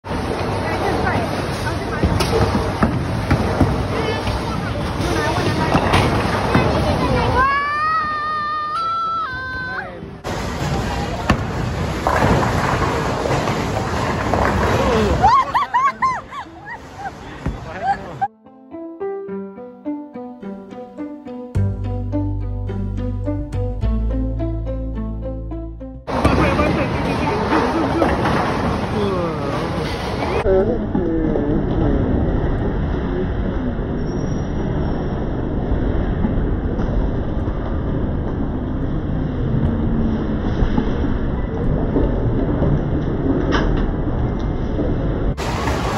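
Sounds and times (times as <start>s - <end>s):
bowling balls rolling: 0.1s - 7.4s, 10.2s - 18.2s, 26.1s - 34.0s, 34.6s - 45.9s.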